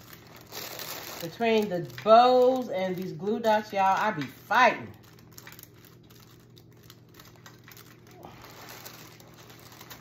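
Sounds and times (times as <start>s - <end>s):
cellophane crinkling: 0.0s - 10.0s.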